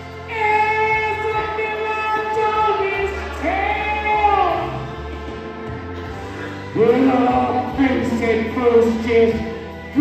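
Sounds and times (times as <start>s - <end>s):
backing track: 0.0s - 10.0s
karaoke singing: 0.0s - 10.0s.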